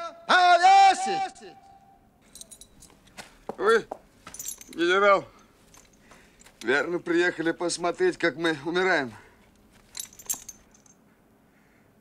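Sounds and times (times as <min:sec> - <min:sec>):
metallic jingling: 0:02.2 - 0:08.7, 0:09.4 - 0:11.1
person speaking: 0:06.4 - 0:09.4.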